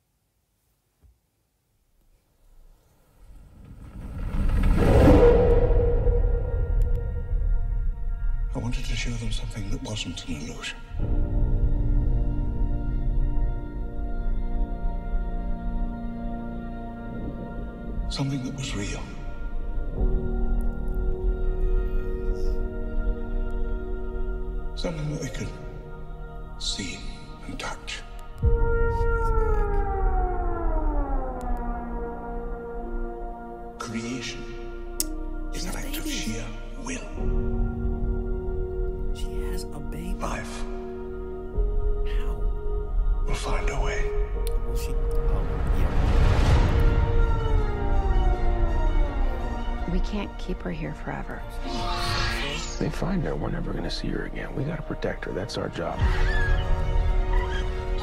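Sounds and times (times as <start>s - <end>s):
low rumble: 3.0s - 10.4s, 11.0s - 24.8s, 36.0s - 54.6s
sustained tones: 4.6s - 11.8s, 12.7s - 58.0s.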